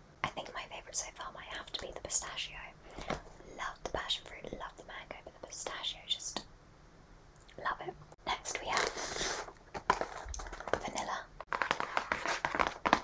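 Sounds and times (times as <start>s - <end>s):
soft whispering: 0.2s - 6.5s, 7.5s - 9.4s, 10.7s - 11.4s.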